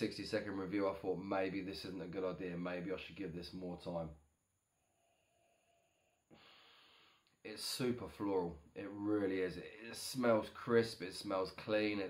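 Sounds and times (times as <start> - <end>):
breath drawn in through nose: 6.3 - 7.3.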